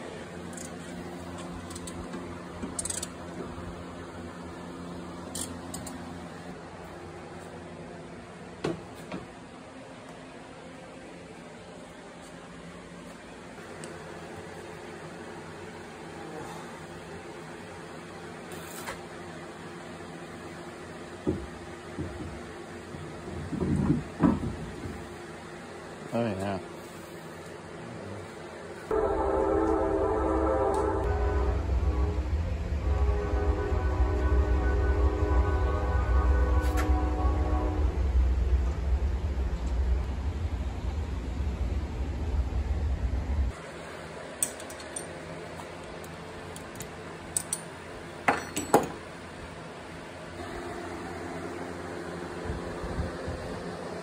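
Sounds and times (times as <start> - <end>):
steady background hum: 0.0 - 54.0.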